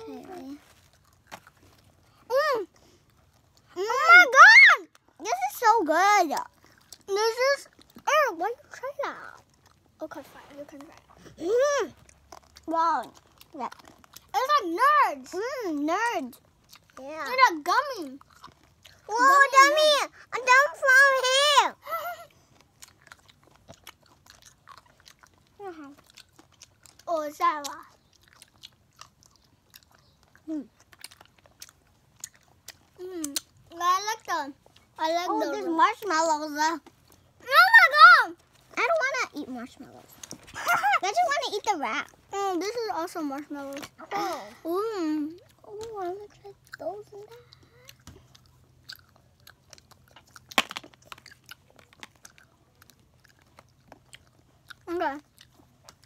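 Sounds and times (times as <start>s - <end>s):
chewing wet clicks and smacks: 6.3s - 10.0s, 12.0s - 14.6s, 16.2s - 17.0s, 17.7s - 19.1s, 22.1s - 33.8s, 36.8s - 37.4s, 45.3s - 56.0s
plastic cups clicking and crackling: 50.4s - 52.2s.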